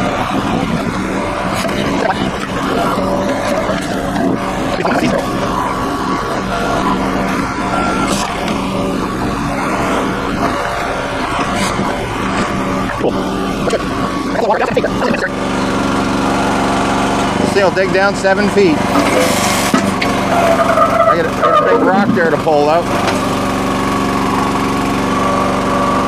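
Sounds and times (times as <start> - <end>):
small gas engine running: 0.0 - 26.0.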